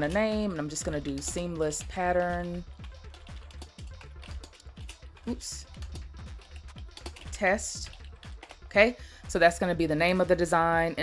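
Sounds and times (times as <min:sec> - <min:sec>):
computer keyboard typing: 0:00.0 - 0:09.0
background music: 0:00.0 - 0:11.0.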